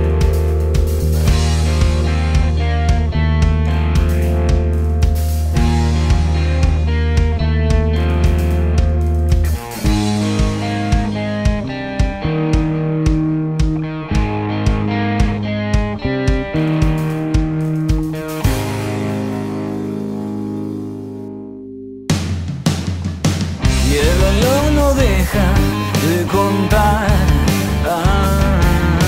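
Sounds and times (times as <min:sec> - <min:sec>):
drum beat: 0:00.0 - 0:19.9, 0:22.1 - 0:29.0
rock guitar chords: 0:00.0 - 0:29.0.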